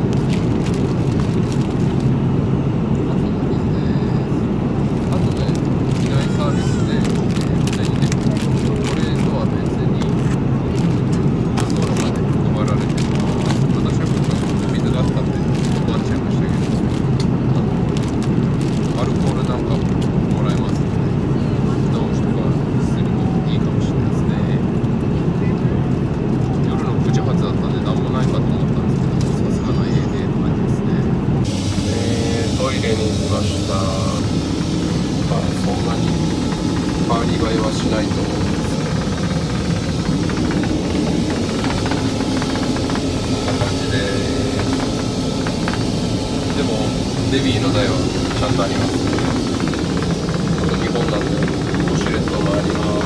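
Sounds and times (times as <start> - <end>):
airliner cabin roar: 0.0 - 53.0.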